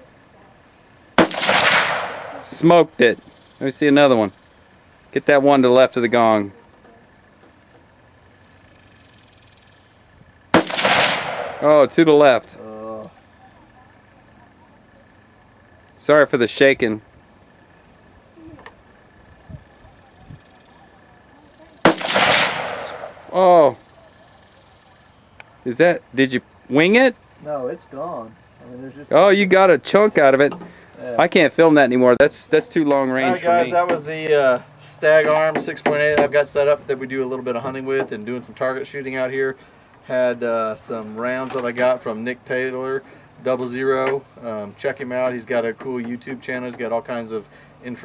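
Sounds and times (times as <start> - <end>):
low background noise: 0.0 - 48.0
rifle shot with echo: 1.2 - 2.7, 10.5 - 11.9, 21.8 - 23.4.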